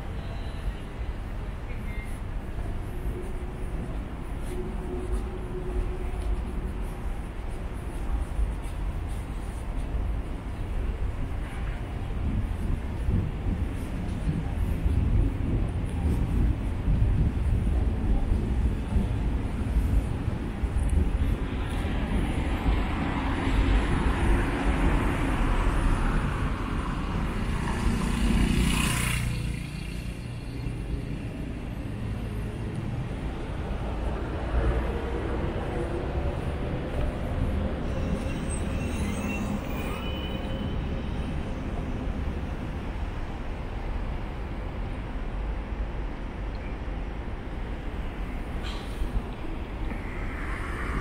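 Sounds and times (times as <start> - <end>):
road traffic rumble: 0.0 - 51.0.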